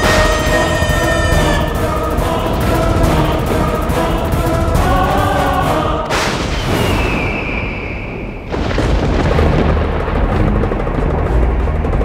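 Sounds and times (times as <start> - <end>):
sudden boom: 0.0 - 12.0.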